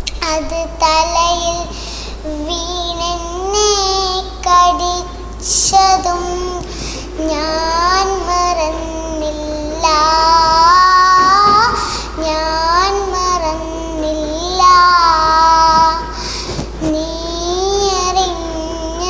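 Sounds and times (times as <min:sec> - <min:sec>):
girl singing: 0:00.0 - 0:19.0.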